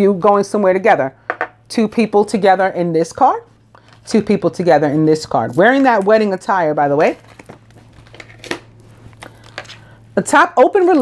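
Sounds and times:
cards rustling and shuffling: 7.0 - 9.9.

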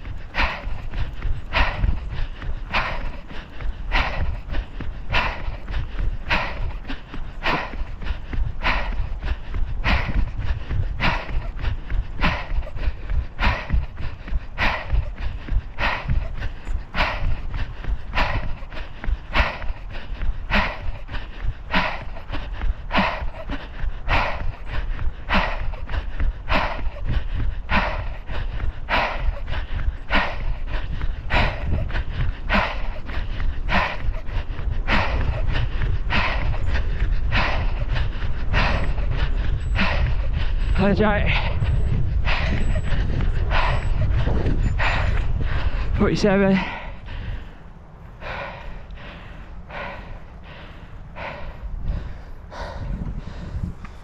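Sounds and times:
running footfalls: 0.0 - 47.6
heavy rhythmic breathing: 0.0 - 54.0
wind rumbling on microphone: 0.0 - 54.0.

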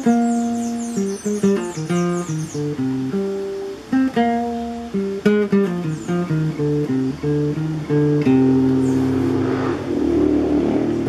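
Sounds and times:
classical guitar chord: 0.0 - 11.0.

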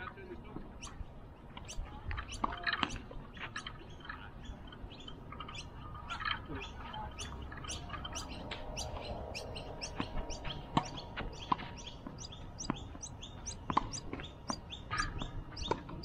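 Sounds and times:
birds chirping: 0.0 - 16.0.

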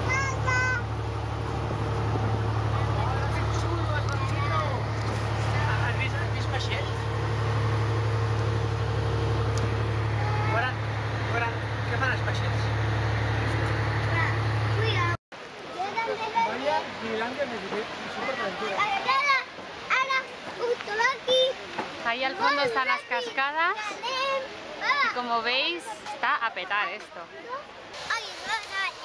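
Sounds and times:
boat engine drone: 0.0 - 15.2
passengers chatting: 1.6 - 7.1.

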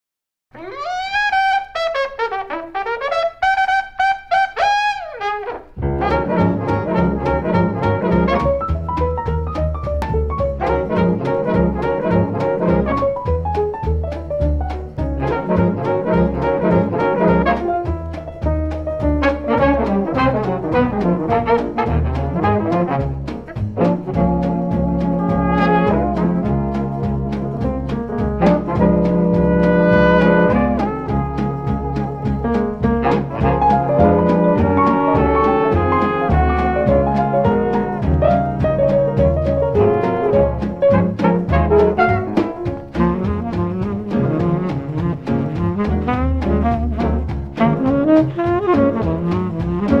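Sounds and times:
brass horn sliding phrase: 0.6 - 8.8, 10.6 - 13.3, 15.2 - 17.9, 19.2 - 50.0
jazz band playing: 0.6 - 50.0
bass: 2.9 - 50.0
drums keeping steady beat: 5.8 - 50.0.

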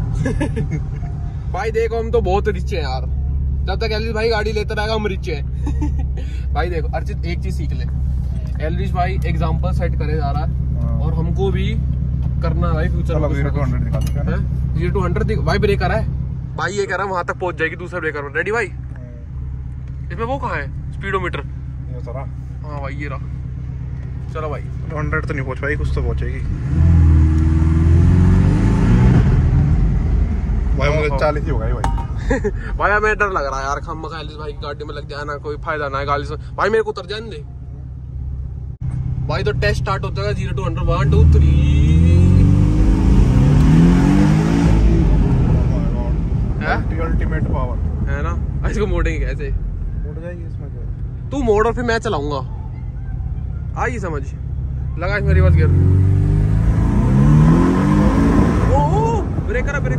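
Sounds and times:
car engine accelerating: 0.0 - 59.9
car engine accelerating hard: 19.7 - 31.8, 38.8 - 50.3, 55.0 - 59.9.

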